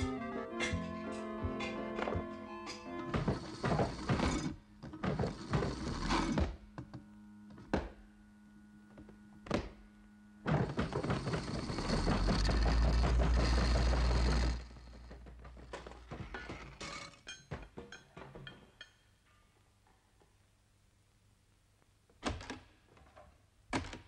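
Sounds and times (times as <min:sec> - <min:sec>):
washing machine humming: 0:10.4 - 0:16.4
thuds and clatter in washing machine drum: 0:10.5 - 0:13.8.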